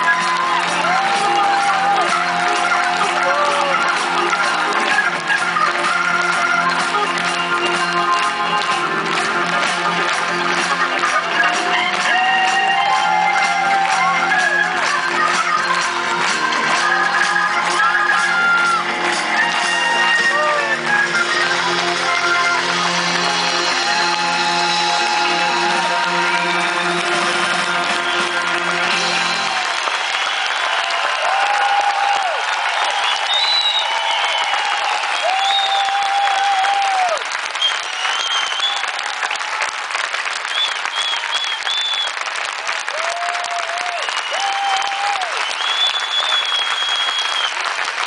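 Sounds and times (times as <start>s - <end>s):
audience applause: 0.0s - 48.0s
whistle-like tones: 33.2s - 34.4s, 37.6s - 38.8s, 40.5s - 42.2s, 45.4s - 47.5s.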